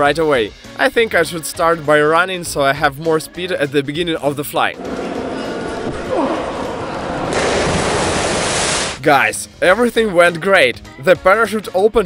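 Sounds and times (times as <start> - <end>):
rush of water spray: 6.4 - 9.0
splash into pool water: 7.0 - 9.0.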